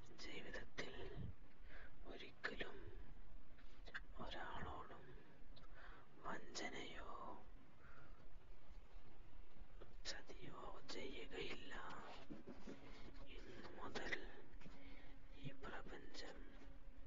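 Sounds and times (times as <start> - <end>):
person whispering: 0.0 - 1.4, 2.0 - 3.1, 3.8 - 5.4, 6.2 - 7.5, 10.0 - 16.8.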